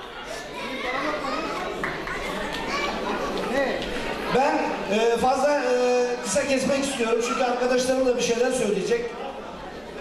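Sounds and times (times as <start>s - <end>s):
children's voices: 0.0s - 4.3s
crowd chattering: 0.0s - 10.0s.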